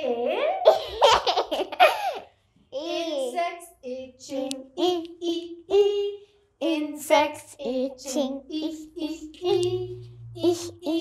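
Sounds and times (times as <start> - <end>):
young child laughing: 0.6 - 2.3.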